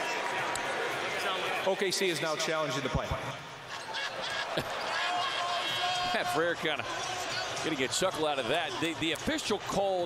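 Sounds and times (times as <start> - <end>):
arena crowd hubbub: 0.0 - 10.0.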